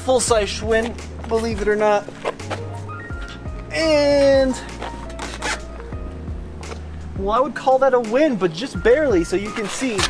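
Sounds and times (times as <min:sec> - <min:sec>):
background music: 0:00.0 - 0:10.0
bicycle tire scraping rustles: 0:00.5 - 0:06.0, 0:09.3 - 0:10.0.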